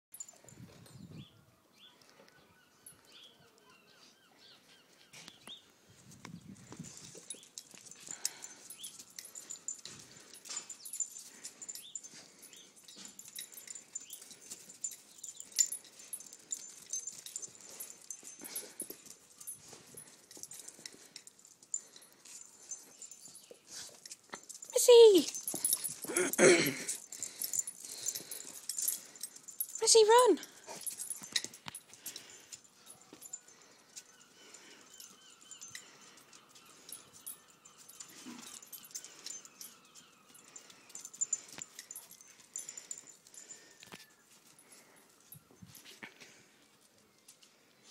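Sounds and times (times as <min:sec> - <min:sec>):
dogs breathing: 0:04.0 - 0:47.9
dogs whining: 0:07.0 - 0:29.8, 0:30.4 - 0:44.3.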